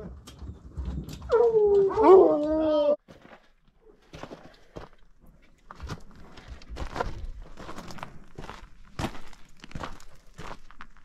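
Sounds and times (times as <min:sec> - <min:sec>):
hounds howling: 0:01.3 - 0:03.0.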